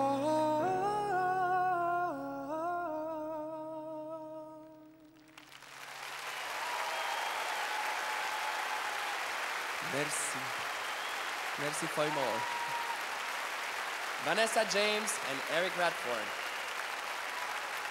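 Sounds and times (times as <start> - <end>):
piano: 0.0 - 5.4
audience applause: 5.2 - 17.9.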